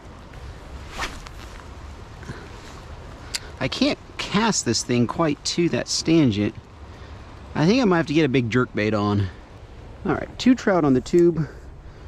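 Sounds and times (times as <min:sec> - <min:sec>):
fishing rod cast swish: 0:00.8 - 0:01.6.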